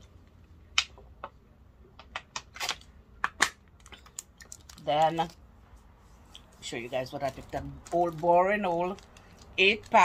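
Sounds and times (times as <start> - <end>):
plastic bottle crinkling: 2.4 - 5.4, 6.3 - 10.0.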